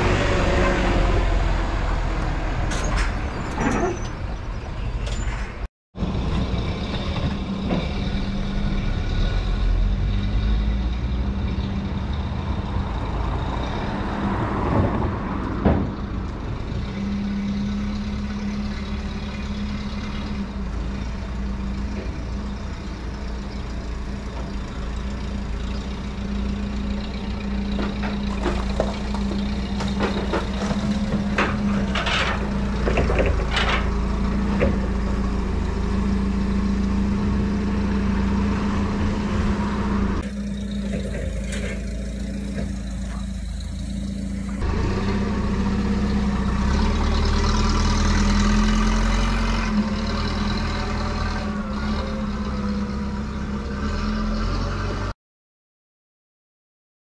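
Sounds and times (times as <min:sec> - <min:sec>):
sharp squeaks and knocks: 0:02.7 - 0:05.7, 0:27.6 - 0:34.9
vehicle engine idling: 0:40.2 - 0:45.0.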